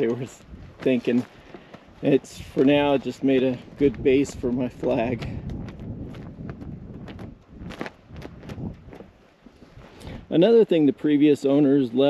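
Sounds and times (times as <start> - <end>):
footsteps of person walking: 0.0 - 10.2.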